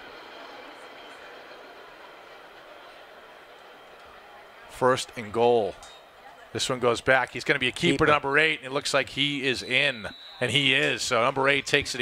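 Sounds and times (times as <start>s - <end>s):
subway train passing: 0.0s - 4.7s
faint high steady tones: 9.2s - 12.0s.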